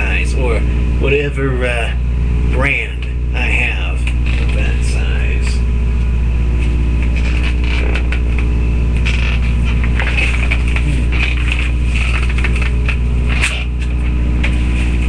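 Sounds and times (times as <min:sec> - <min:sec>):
loud low hum: 0:00.0 - 0:15.0.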